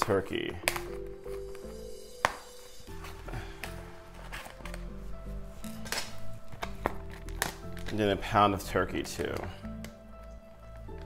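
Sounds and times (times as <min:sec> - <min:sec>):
background music with low notes: 0:00.0 - 0:11.0.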